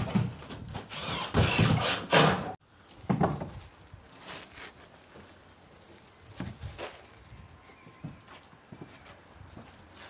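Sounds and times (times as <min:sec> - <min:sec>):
light rustling of roofing felt: 0:02.8 - 0:10.0.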